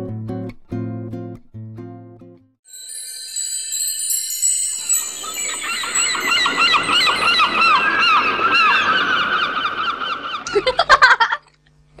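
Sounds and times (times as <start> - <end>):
high chime-like tones: 2.7 - 8.5
flock of birds calling: 4.8 - 10.8.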